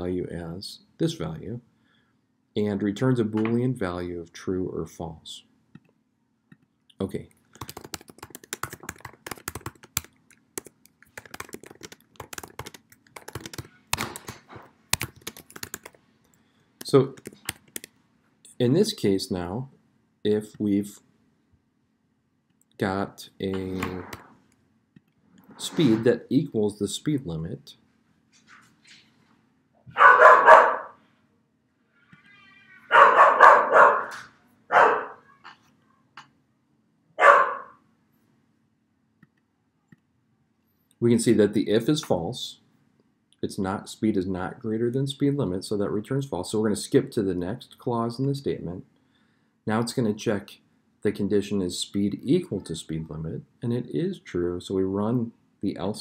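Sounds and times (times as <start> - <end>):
typing on computer keyboard: 7.6 - 16.0, 16.8 - 17.9
dog barking: 29.9 - 31.0, 32.9 - 35.2, 37.2 - 37.8.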